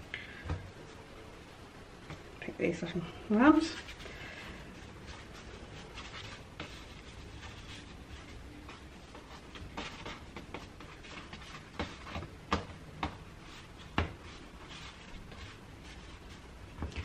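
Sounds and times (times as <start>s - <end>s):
hands rubbing bread dough: 3.5s - 17.0s.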